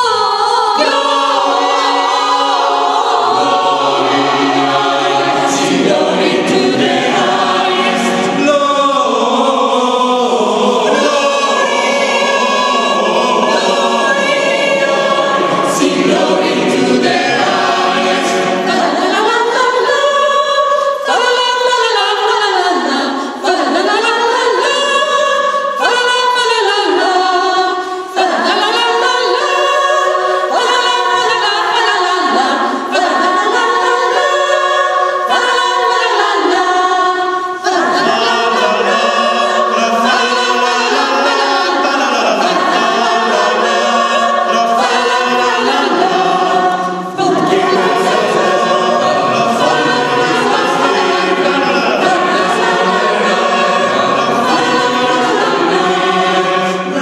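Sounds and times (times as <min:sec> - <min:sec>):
mixed choir singing a cappella: 0:00.0 - 0:57.0.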